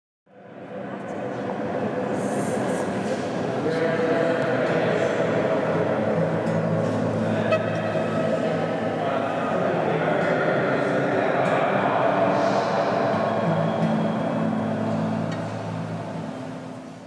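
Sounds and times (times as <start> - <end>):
echoing murmur of voices: 0.3 - 17.0.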